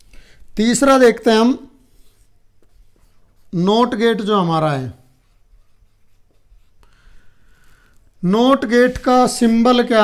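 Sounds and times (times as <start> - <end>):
marker scratching on whiteboard: 1.8 - 4.2, 4.8 - 7.2.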